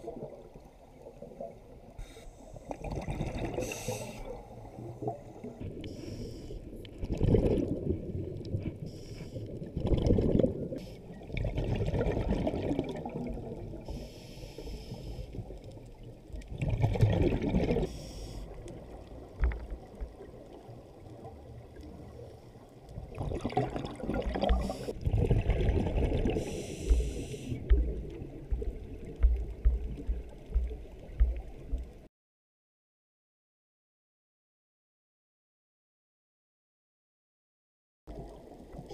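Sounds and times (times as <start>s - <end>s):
gurgling exhaled bubbles: 2.7s - 5.6s, 7.0s - 8.6s, 9.6s - 13.9s, 16.4s - 17.9s, 23.0s - 30.7s
hissing regulator inhalations: 3.6s - 4.4s, 5.8s - 6.6s, 8.9s - 9.5s, 13.9s - 15.4s, 17.9s - 18.6s, 24.5s - 24.9s, 26.4s - 27.7s.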